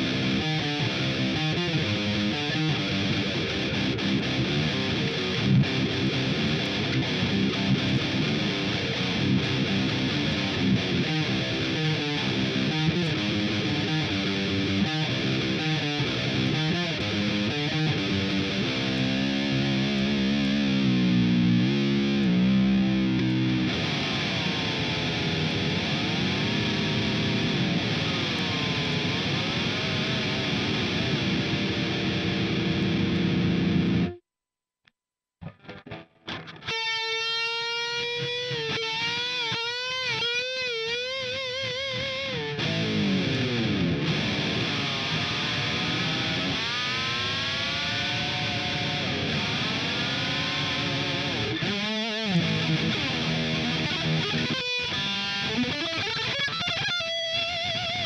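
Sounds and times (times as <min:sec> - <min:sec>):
distorted electric guitar vibrato: 0:00.0 - 0:34.2, 0:35.4 - 0:58.0
guitar tremolo dive: 0:00.0 - 0:34.2, 0:35.4 - 0:58.0.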